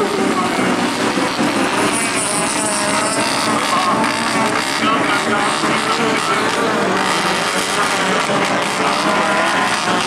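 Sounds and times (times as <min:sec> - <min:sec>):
race car engines revving: 0:00.0 - 0:10.0.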